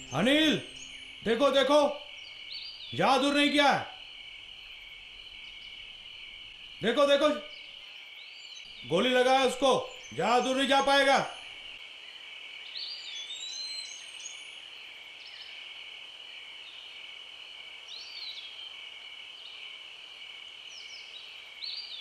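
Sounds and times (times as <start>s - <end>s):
high-pitched insect chorus: 0.0s - 22.0s.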